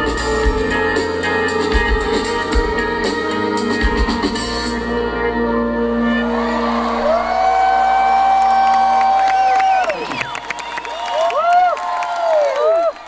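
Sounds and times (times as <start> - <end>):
concert crowd cheering: 2.5 - 13.0
long held shout: 6.1 - 10.2, 10.8 - 13.0
person whooping close to microphone: 6.8 - 13.0.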